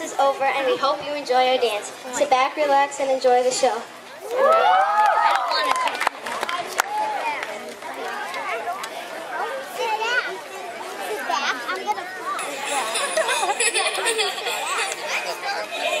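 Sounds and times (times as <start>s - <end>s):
children chattering: 0.0s - 4.4s, 5.4s - 16.0s.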